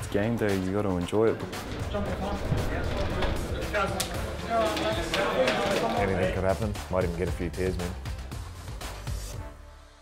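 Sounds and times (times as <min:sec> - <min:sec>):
men's voices echoing: 0:00.1 - 0:07.7.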